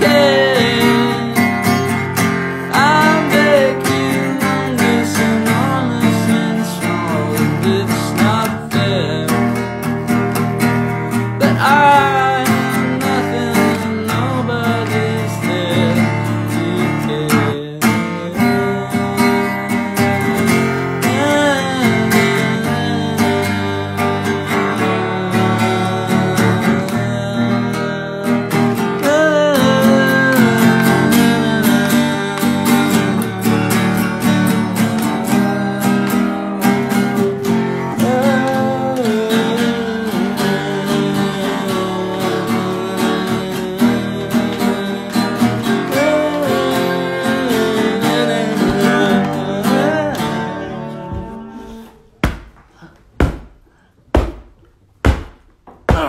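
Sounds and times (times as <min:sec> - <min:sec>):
man singing: 0:00.0 - 0:53.4
acoustic guitar strumming: 0:00.0 - 0:56.0.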